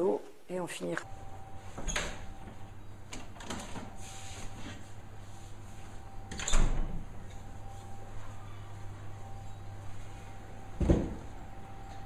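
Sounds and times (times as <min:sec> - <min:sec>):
low steady hum: 0:00.0 - 0:12.0
refrigerator door shutting thud: 0:10.8 - 0:11.3.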